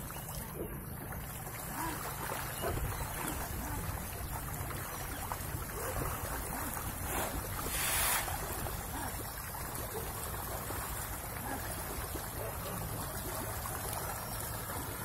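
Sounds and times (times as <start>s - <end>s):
wind rumbling on microphone: 0.4s - 11.1s
fish splashing at water surface: 1.2s - 15.0s.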